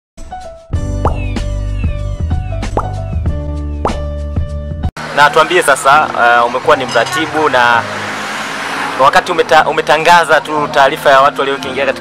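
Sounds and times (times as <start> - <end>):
electronic music with deep bass: 0.8 - 4.8
rising blip effects: 1.0 - 3.2.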